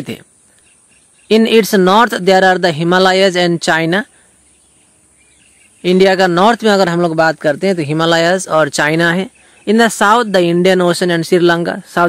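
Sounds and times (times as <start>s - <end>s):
person speaking: 0.0s - 0.3s, 1.3s - 4.3s, 5.8s - 12.0s
faint background noise: 0.0s - 12.0s.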